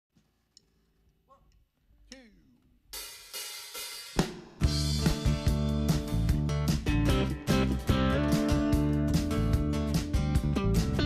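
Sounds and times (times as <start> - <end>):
drum kit with cymbals: 2.9 - 11.0
live band playing: 4.6 - 11.0.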